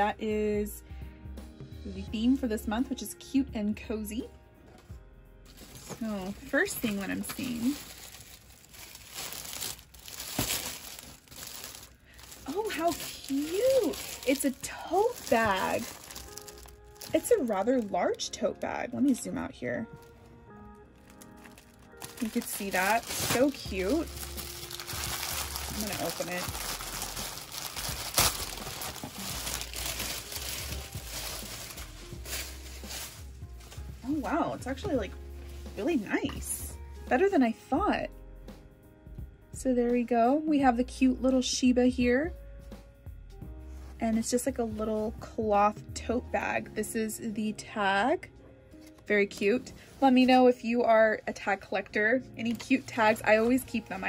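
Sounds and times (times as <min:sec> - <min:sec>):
plastic packaging crinkling: 0:05.5 - 0:34.4.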